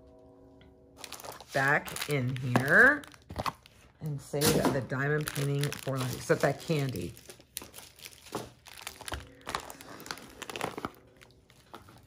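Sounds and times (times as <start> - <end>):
plastic packaging crinkling: 1.0 - 12.0.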